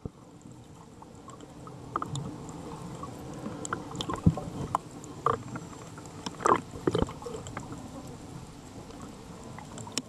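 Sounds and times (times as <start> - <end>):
underwater water noise: 0.0 - 10.0.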